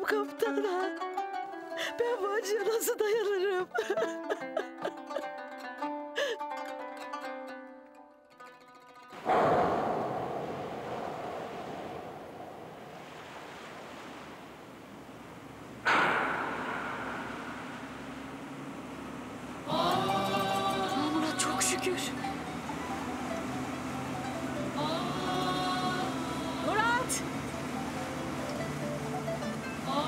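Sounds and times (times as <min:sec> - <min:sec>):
plucked string music: 0:00.0 - 0:10.4, 0:15.9 - 0:30.0
sea waves washing onto shore: 0:09.2 - 0:30.0.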